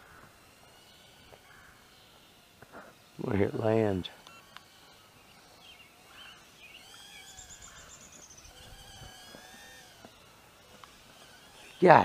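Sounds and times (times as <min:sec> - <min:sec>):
birds warbling and chirping: 0:00.0 - 0:12.0
bird trill: 0:04.2 - 0:09.9.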